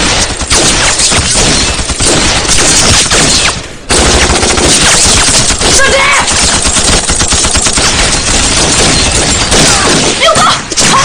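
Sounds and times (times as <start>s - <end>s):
rapid automatic gunfire: 0.0s - 11.0s.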